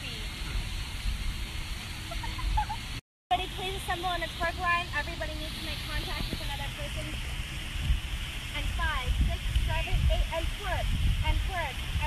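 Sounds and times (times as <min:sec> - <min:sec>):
surf washing: 0:00.0 - 0:12.0
wind rumbling on microphone: 0:00.0 - 0:12.0.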